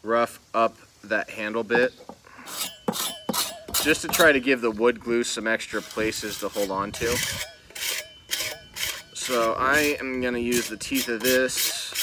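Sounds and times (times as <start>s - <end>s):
handsaw teeth scraping wood: 2.4s - 4.5s, 5.3s - 12.0s.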